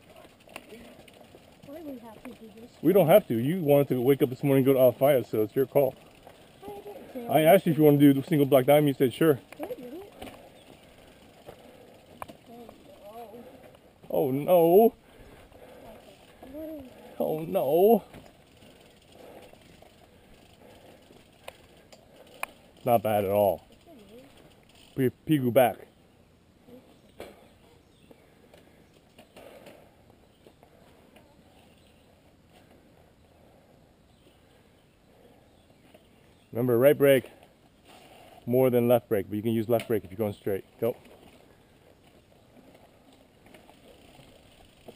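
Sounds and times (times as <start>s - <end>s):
bikes rattling and clicking: 0.0s - 26.0s, 26.6s - 44.9s
faint clicks: 18.1s - 22.9s
soft rustle: 37.3s - 38.5s.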